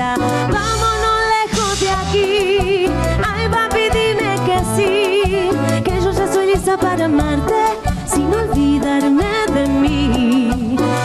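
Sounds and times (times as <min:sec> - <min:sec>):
bass guitar: 0:00.0 - 0:11.0
hand percussion: 0:00.0 - 0:11.0
keyboard: 0:00.0 - 0:11.0.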